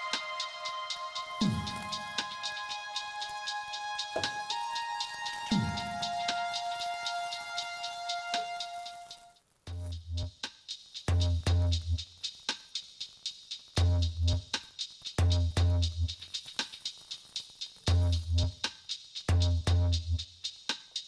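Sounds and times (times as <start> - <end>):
synth music with held tones: 0.0 - 9.4
electronic drum beat: 0.0 - 21.0
deep bass thumps: 4.2 - 4.5.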